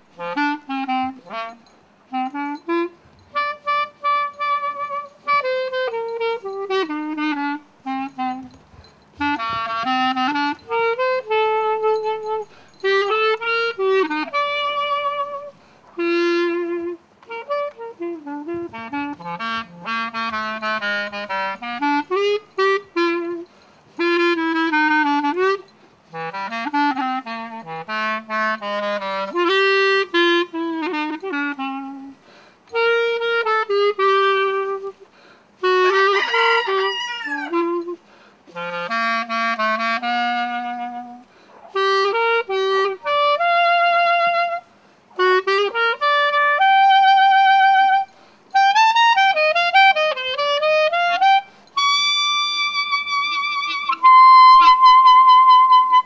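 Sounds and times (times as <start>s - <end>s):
solo clarinet melody: 0.0s - 56.0s.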